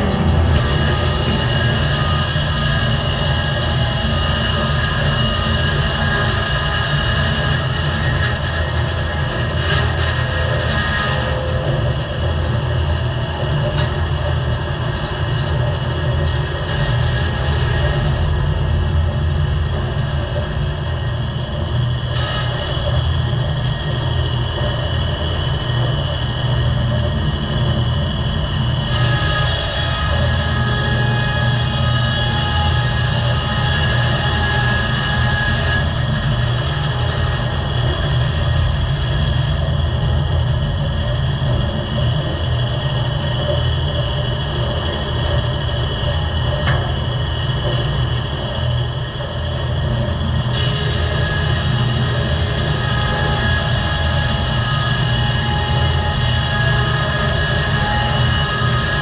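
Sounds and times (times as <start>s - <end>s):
diesel engine rumbling: 0.0s - 6.7s.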